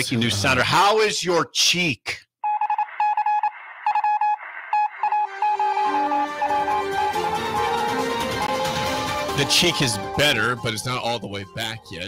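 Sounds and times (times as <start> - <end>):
rapid electronic beeps: 2.4 - 8.7.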